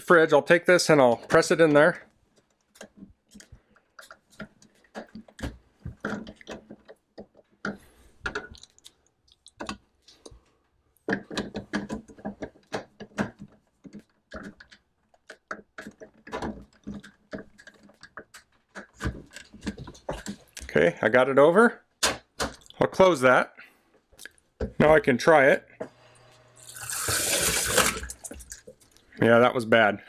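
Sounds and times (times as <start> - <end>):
hard plastic clicks and scraping: 2.3 - 20.8.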